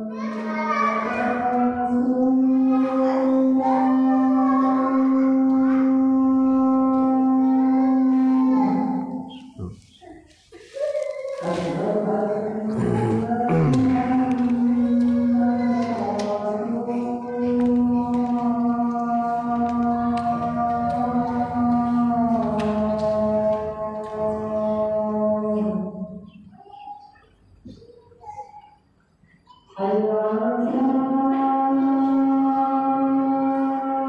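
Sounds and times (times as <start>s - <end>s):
call to prayer singing: 0.0s - 27.4s, 29.3s - 34.0s.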